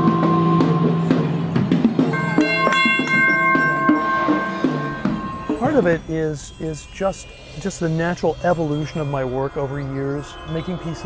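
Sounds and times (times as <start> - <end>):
long ringing percussion tones: 0.0 - 11.0
sharp struck percussion hits: 0.0 - 11.0
higher ringing tones: 1.0 - 11.0.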